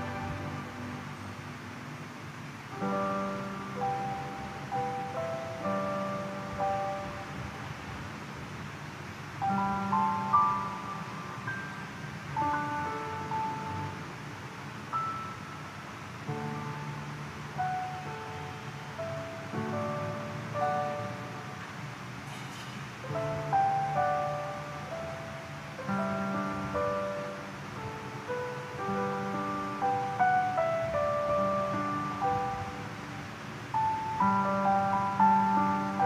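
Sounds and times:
slow church music on keyboard: 0.0 - 36.0.

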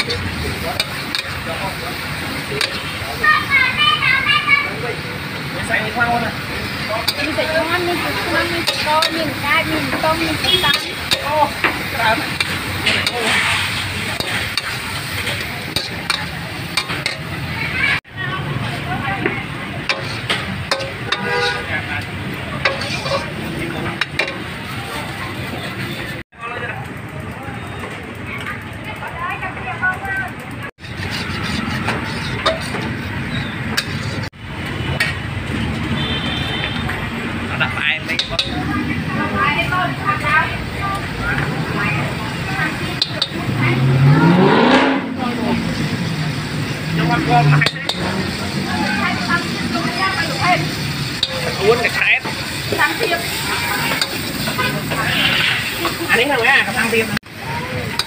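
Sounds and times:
metal spatula scraping a wok: 0.0 - 3.3, 6.4 - 17.5, 19.8 - 24.6, 30.8 - 34.3, 45.9 - 56.9
food sizzling in a wok: 0.0 - 26.2, 29.0 - 58.0
voices chattering: 0.0 - 58.0
vehicle passing: 28.9 - 58.0.

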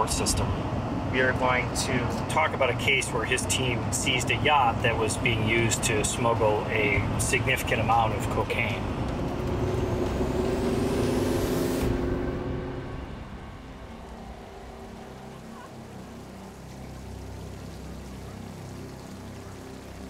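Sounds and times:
highway road noise: 0.0 - 20.0
rising hiss: 9.4 - 15.5.

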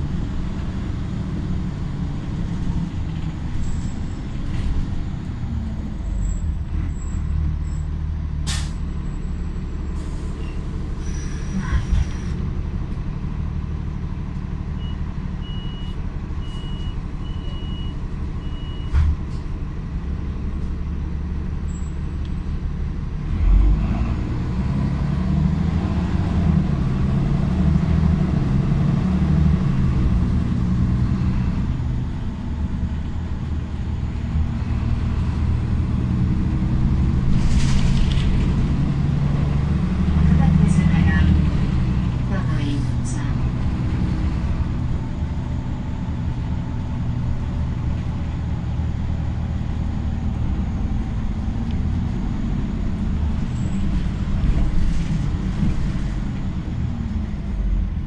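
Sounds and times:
bus engine idling and accelerating: 0.0 - 58.0
thump: 18.9 - 19.2.

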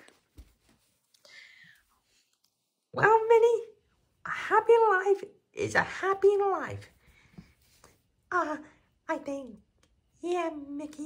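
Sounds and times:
person speaking: 2.9 - 7.0.

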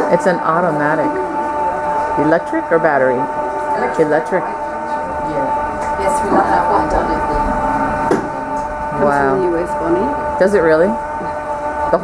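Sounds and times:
yarn winder motor whine: 0.0 - 12.0.

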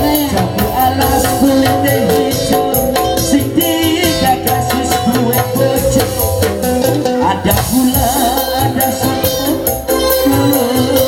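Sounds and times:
electric keyboard melody: 0.0 - 11.0
percussion beat: 0.0 - 11.0.

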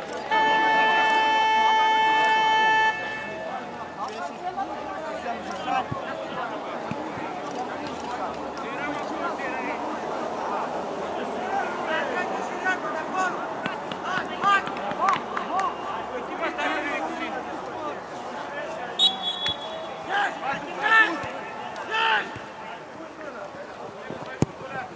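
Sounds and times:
people talking and calling out: 0.0 - 24.9
loud shouts: 19.0 - 22.6.

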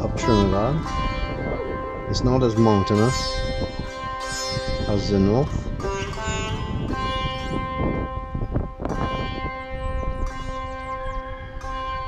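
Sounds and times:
low rumble: 0.0 - 7.7
drone: 0.0 - 12.0
sitar-like string tones: 0.0 - 12.0.

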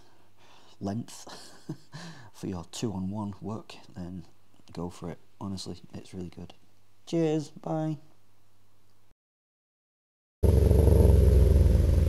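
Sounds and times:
low engine-like rumble: 10.4 - 12.0.

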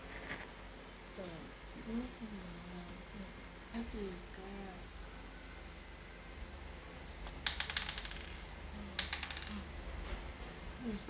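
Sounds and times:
beads clicking and clattering: 7.3 - 9.7.

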